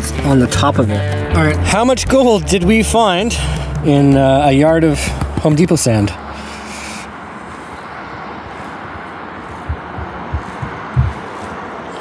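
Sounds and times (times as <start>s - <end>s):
low soft heartbeat thumps: 9.4s - 11.7s.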